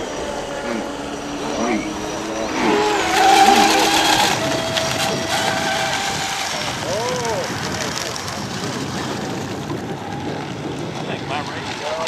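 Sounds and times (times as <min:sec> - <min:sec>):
high motor whine: 0:00.0 - 0:11.2.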